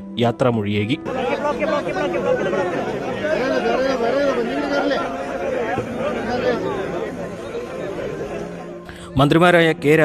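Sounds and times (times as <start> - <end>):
crowd talking: 1.0 - 10.0.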